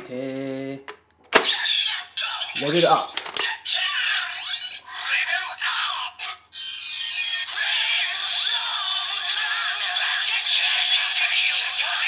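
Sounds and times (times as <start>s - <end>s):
synthetic voice from toy speaker: 1.4s - 12.0s
toy electronic music: 6.6s - 12.0s.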